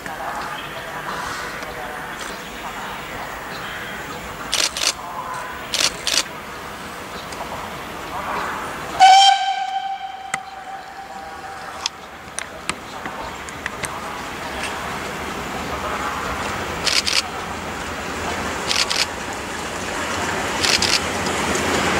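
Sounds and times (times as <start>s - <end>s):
approaching train noise: 0.0s - 21.9s
short sharp bursts: 4.5s - 5.0s, 20.6s - 21.2s
steam locomotive whistle: 9.0s - 12.1s.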